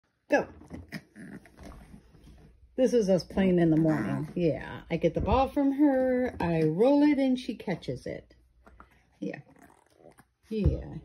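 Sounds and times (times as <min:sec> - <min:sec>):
small dog vocalizing: 0:00.6 - 0:02.0.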